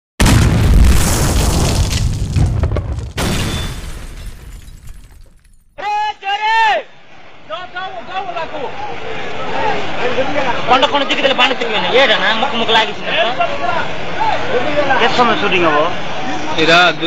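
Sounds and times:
loud boom with rumbling decay: 0.2 - 4.2.

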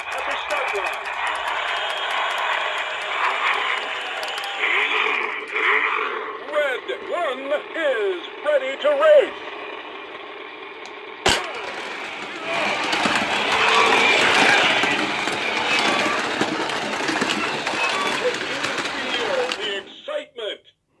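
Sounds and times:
toy race cars running on track: 0.0 - 20.2.

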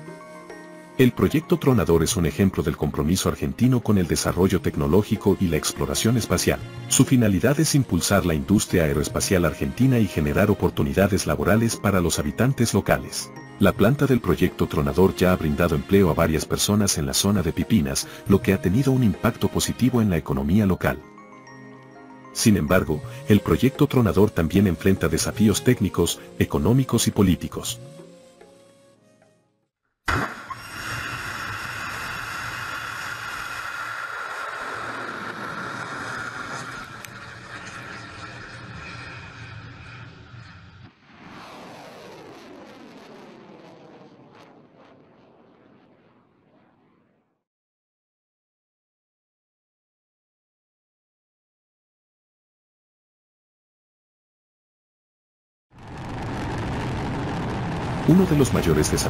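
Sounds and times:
rocket exhaust roaring: 30.1 - 47.4, 55.8 - 59.0.

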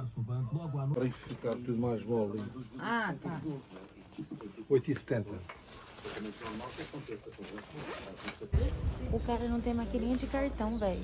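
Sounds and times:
quiet background talk: 0.0 - 11.0.

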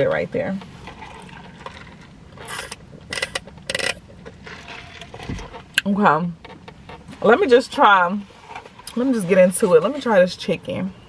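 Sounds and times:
slurping through a straw: 0.9 - 5.2.

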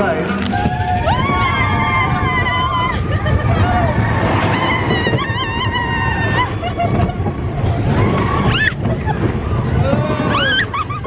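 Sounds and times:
amusement ride rumbling: 0.0 - 11.0
riders laughing and shrieking: 0.5 - 11.0.

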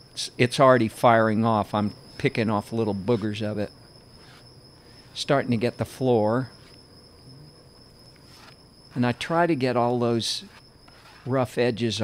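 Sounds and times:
insects trilling: 0.0 - 12.0.

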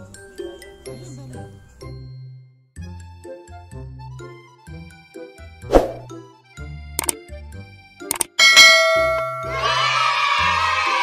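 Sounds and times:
background music: 0.0 - 11.0
bell ding: 8.4 - 9.8
crowd cheering: 9.0 - 11.0.

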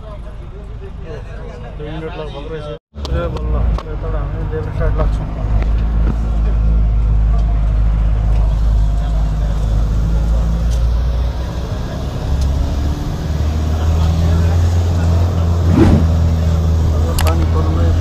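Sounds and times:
bus engine drone: 3.0 - 18.0
road noise: 3.0 - 18.0.

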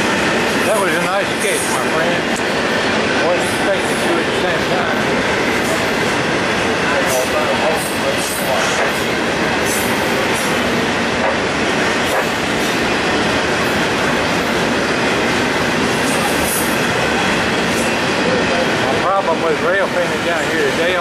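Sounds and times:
train wheels rumbling on rail: 0.0 - 21.0.

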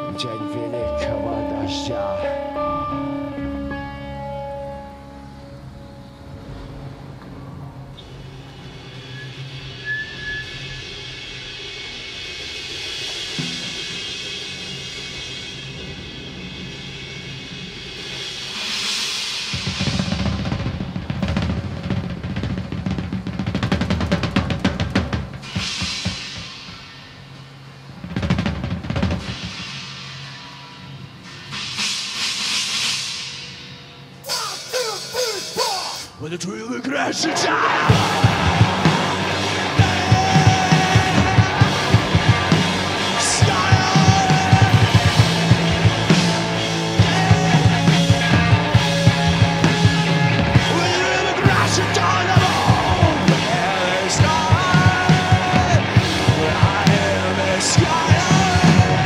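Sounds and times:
held amplified note: 0.0 - 10.6
cymbal crashes: 1.0 - 36.2, 37.5 - 59.0
drum rolls on toms and snare: 6.4 - 36.2, 37.3 - 59.0.

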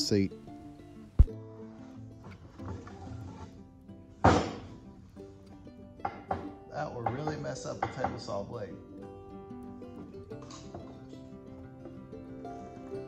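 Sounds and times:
acoustic guitar music: 0.0 - 13.0
board thud: 4.2 - 4.7.

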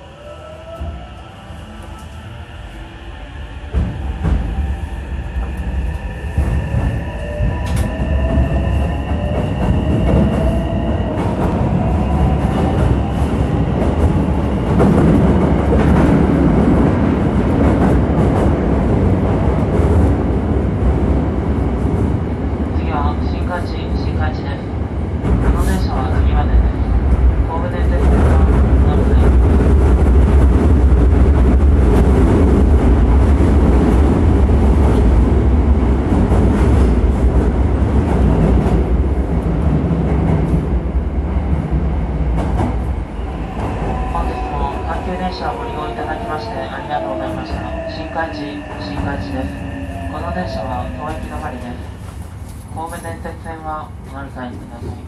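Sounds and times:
train wheels rumbling on rail: 0.7 - 55.0.

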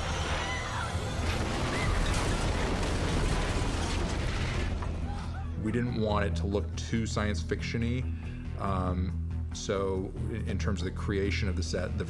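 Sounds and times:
explosion with rumbling: 1.0 - 5.4.

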